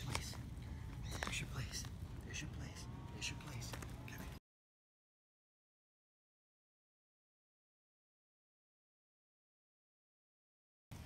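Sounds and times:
low outdoor rumble: 0.0s - 4.4s
person whispering: 0.0s - 4.4s.

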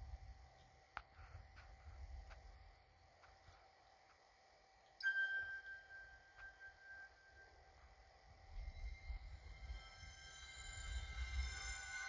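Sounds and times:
chime tone through tv speaker: 5.0s - 7.6s.

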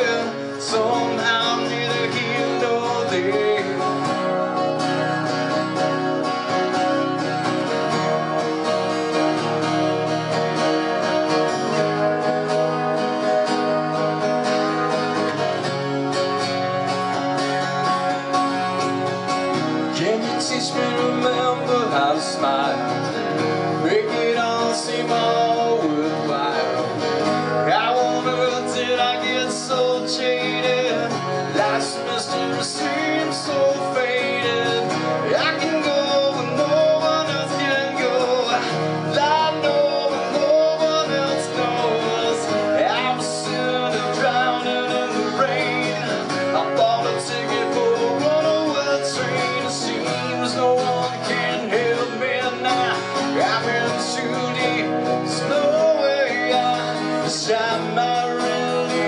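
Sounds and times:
man singing into microphone: 0.0s - 5.6s, 19.8s - 59.0s
acoustic guitar strumming: 0.0s - 59.0s.

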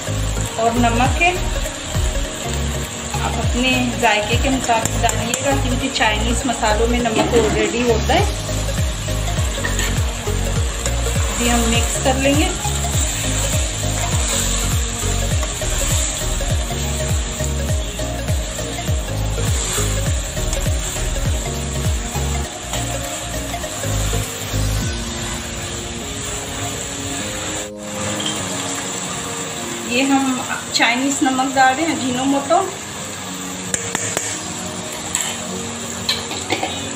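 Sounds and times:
vegetables sizzling: 0.0s - 36.9s
spatula scraping frying pan: 9.5s - 10.1s.

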